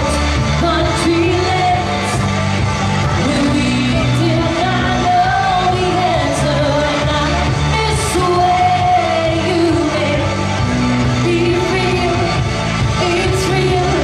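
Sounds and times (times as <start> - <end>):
woman singing into a microphone: 0.0 - 2.5, 3.1 - 14.0
amplified pop backing music: 0.0 - 14.0.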